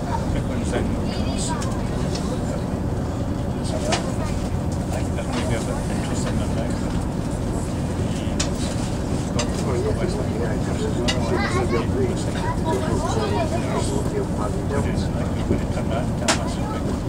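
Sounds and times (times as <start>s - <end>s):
train engine and running gear rumble: 0.0s - 17.0s.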